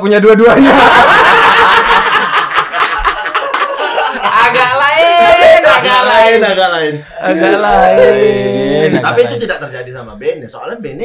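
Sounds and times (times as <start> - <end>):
men laughing: 0.5 - 6.4.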